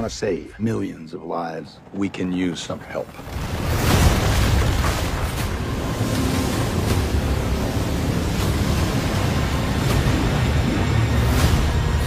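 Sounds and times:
trailer music: 0:03.8 - 0:12.0.

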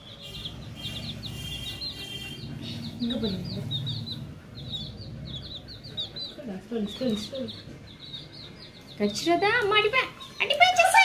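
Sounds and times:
baby chicks peeping: 0:00.0 - 0:11.0.

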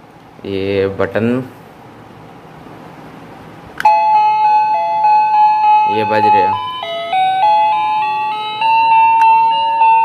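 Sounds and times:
electronic door chime melody: 0:03.8 - 0:10.0.

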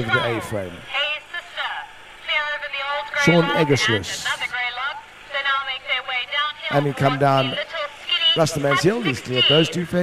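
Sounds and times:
commentator speaking: 0:00.0 - 0:10.0
indistinct speech: 0:00.0 - 0:10.0.

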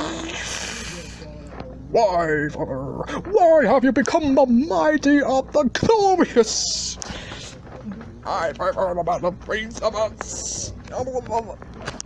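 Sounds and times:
rising vocal cry: 0:00.0 - 0:00.6.

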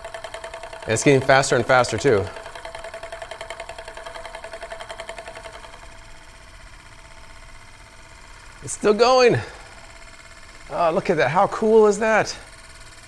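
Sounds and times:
metal disc spinning whirring rattle: 0:00.0 - 0:13.0.

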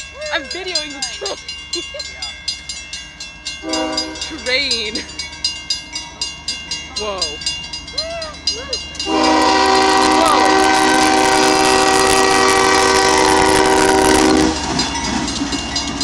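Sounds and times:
crossing signal bell ringing: 0:00.0 - 0:16.0
locomotive rumbling past: 0:00.0 - 0:16.0
locomotive air horn: 0:03.6 - 0:04.3, 0:09.0 - 0:14.6.

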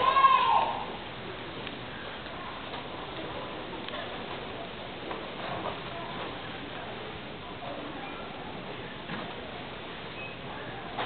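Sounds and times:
indoor hall background noise: 0:00.0 - 0:11.0.

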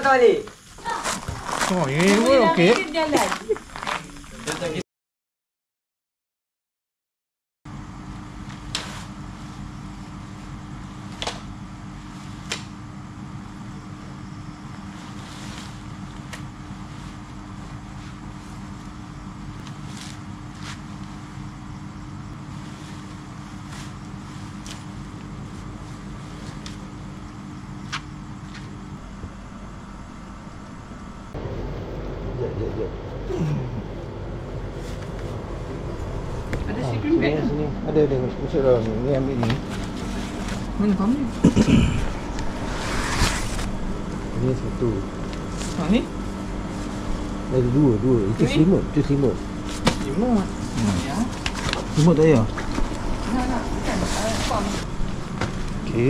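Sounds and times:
steady mechanical hum: 0:00.0 - 0:04.8, 0:07.7 - 0:56.0
tent fabric rustling: 0:00.6 - 0:04.7, 0:22.4 - 0:26.9, 0:39.6 - 0:40.9, 0:53.3 - 0:55.7.

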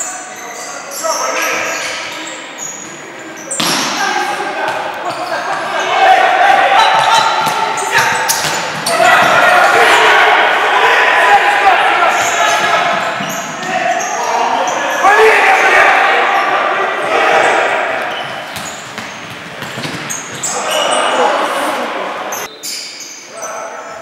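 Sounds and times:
voices shouting in a hall: 0:00.0 - 0:24.0
shoes squeaking on wooden floor: 0:12.1 - 0:14.8, 0:18.0 - 0:21.2.

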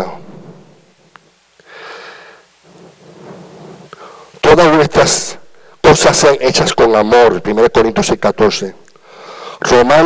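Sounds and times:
breath blowing into microphone: 0:01.6 - 0:04.4.

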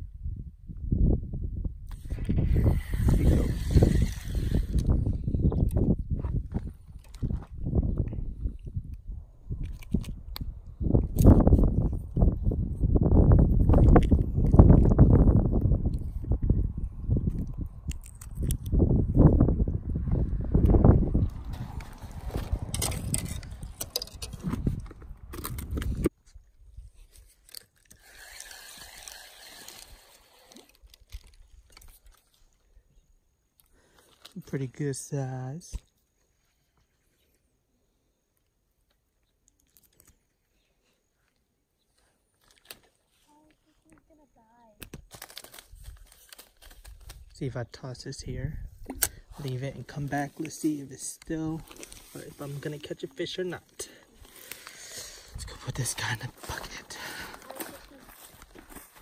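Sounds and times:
wind buffeting microphone: 0:00.0 - 0:26.9, 0:48.0 - 0:50.0
microphone handling noise: 0:01.7 - 0:08.9, 0:09.5 - 0:26.2.

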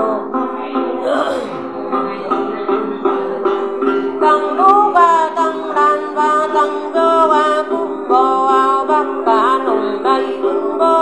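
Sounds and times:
woman singing a chant: 0:04.2 - 0:11.0.

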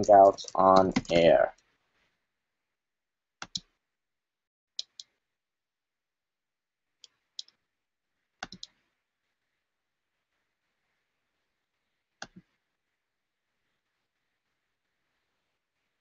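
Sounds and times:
computer mouse clicking: 0:00.1 - 0:01.4, 0:03.4 - 0:03.7, 0:04.8 - 0:05.1, 0:08.4 - 0:08.8, 0:12.2 - 0:12.5.

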